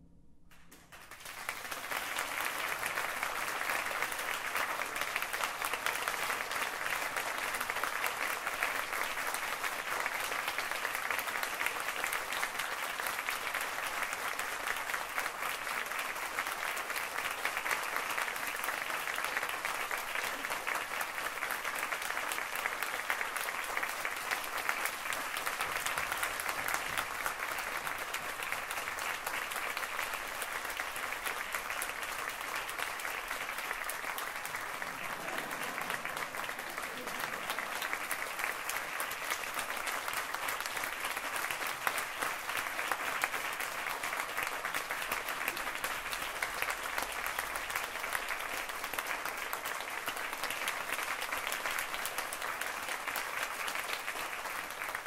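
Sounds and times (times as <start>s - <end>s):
audience applause: 0.5s - 55.0s.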